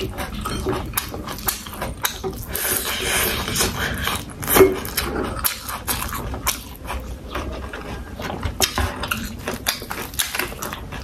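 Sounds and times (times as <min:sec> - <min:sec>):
mouth chewing and lip-smacking: 0:00.0 - 0:11.0.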